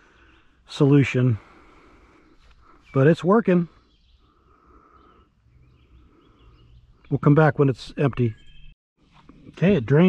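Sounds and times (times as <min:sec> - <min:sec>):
small bird chirps: 0:02.2 - 0:08.8.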